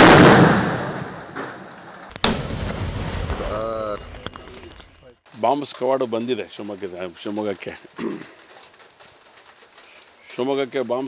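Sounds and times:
faint background noise: 3.2 - 11.0
man speaking: 3.4 - 8.0.

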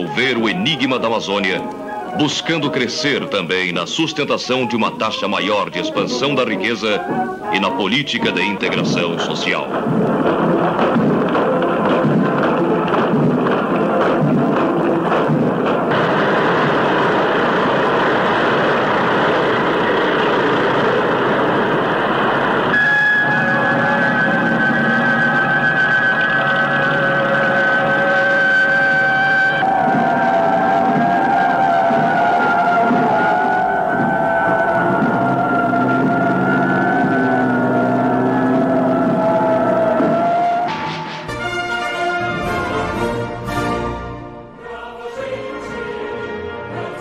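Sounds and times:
held musical notes: 0.0 - 20.1, 20.7 - 47.0
military vehicles passing: 0.0 - 41.2.

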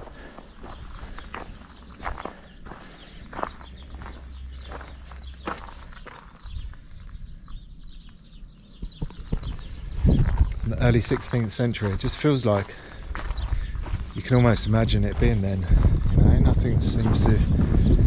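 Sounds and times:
footsteps on gravel: 0.0 - 7.6, 8.9 - 16.2.

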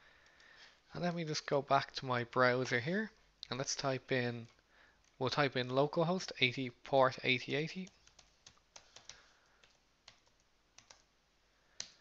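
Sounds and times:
computer keyboard clicks: 8.0 - 11.1.

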